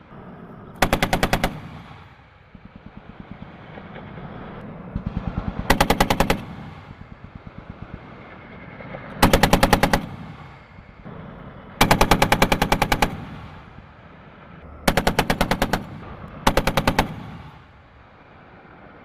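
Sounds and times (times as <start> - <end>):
heavy machine gun bursts: 5.0 - 7.0, 11.8 - 13.6, 14.8 - 17.6.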